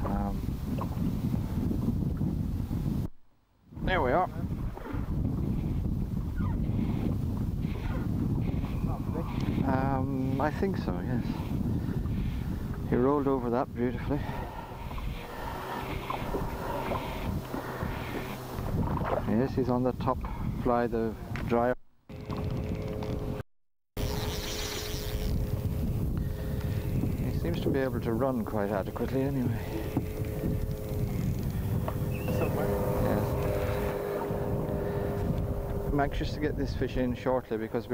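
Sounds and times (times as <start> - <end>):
wind rumbling on microphone: 0.0 - 23.4, 24.0 - 37.9
faint steady hum: 13.8 - 19.1, 24.0 - 37.9.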